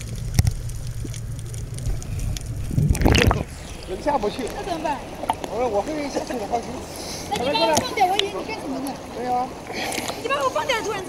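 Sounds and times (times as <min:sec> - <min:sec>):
water noise: 0:00.0 - 0:11.0
people talking: 0:03.2 - 0:09.5, 0:10.2 - 0:11.0.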